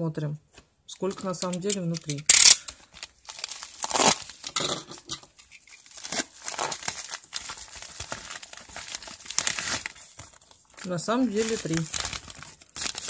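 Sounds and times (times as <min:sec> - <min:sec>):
plastic bags crinkling: 0:01.0 - 0:13.0.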